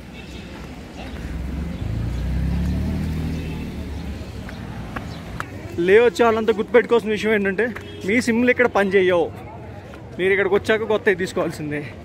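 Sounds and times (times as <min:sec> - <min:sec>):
vehicle engine rumbling: 0:00.0 - 0:08.4.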